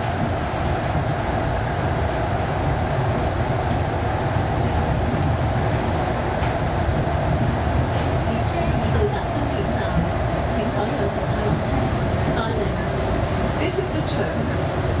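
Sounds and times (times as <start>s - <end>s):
train hum: 0.0s - 15.0s
train rumbling through tunnel: 0.0s - 15.0s.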